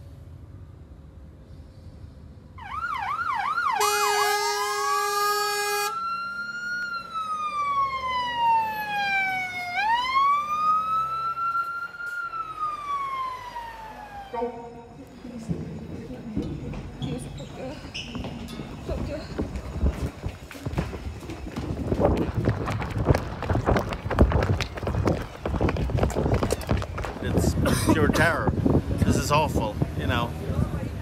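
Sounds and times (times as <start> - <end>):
emergency vehicle siren: 2.6 - 15.0.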